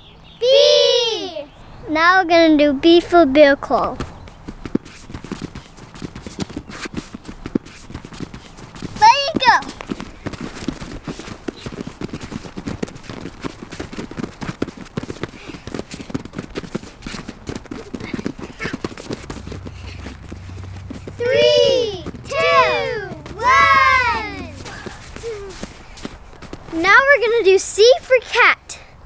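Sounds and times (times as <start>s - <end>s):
child calling out: 0.4s - 1.5s, 21.2s - 25.6s
hands and feet slapping on mats: 3.6s - 28.4s.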